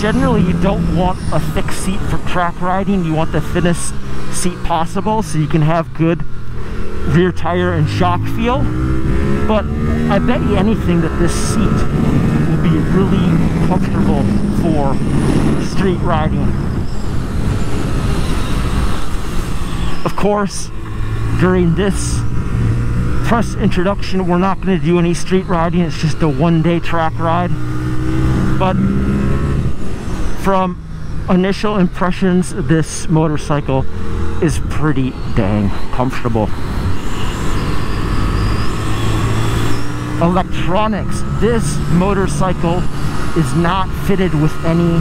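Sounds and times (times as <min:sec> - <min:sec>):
motorcycle engine at speed: 0:00.0 - 0:45.0
wind rush on microphone: 0:08.6 - 0:21.4.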